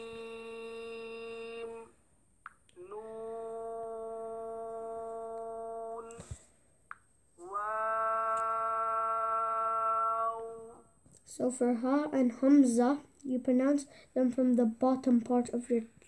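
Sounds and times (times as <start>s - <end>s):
person chanting long tones: 0.0s - 2.0s, 2.8s - 6.4s, 7.4s - 11.0s.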